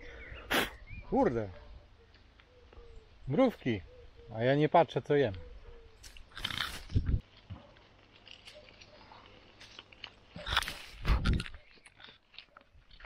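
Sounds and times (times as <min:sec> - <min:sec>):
person chewing fruit: 0:06.0 - 0:13.0.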